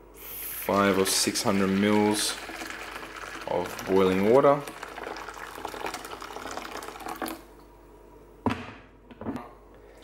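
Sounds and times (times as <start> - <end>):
water pouring into plastic bowl: 0.7 - 7.5.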